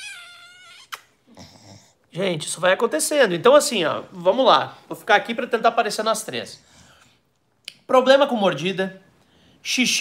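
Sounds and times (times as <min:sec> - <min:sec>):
dog whining: 0:00.0 - 0:01.9.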